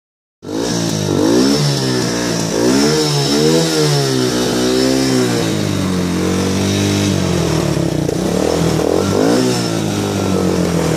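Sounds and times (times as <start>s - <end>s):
atv engine revving: 0.4s - 10.9s.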